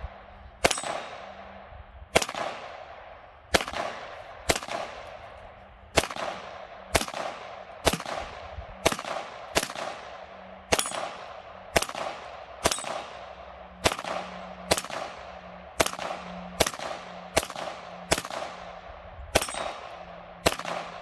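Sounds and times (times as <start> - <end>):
pistol shots with echo: 0.6 - 1.5, 2.1 - 5.2, 5.9 - 21.0.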